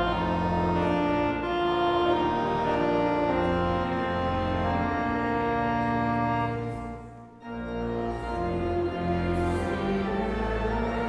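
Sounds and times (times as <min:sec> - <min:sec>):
church organ: 0:00.0 - 0:11.0
congregation singing a hymn: 0:00.0 - 0:11.0.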